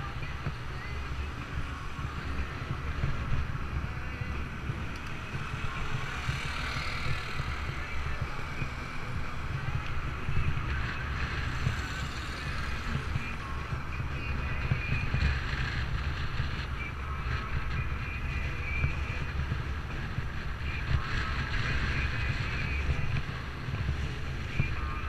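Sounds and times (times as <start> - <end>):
passing traffic: 0.0 - 25.0
wind buffeting microphone: 0.0 - 25.0.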